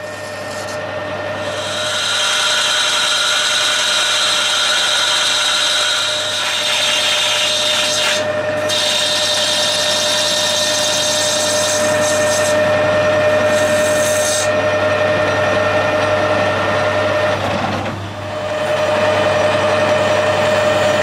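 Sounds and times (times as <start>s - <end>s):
lathe drive whine: 0.0s - 21.0s
tool cutting metal hiss: 1.4s - 12.6s, 13.4s - 14.5s.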